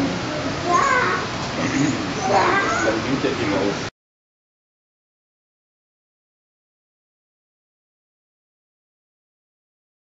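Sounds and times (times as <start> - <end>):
indistinct chatter of voices: 0.0 - 3.9.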